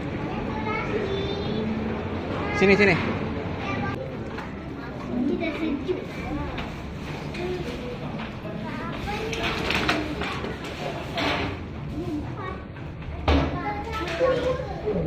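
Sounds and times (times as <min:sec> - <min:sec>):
adults and children talking: 0:00.0 - 0:15.0.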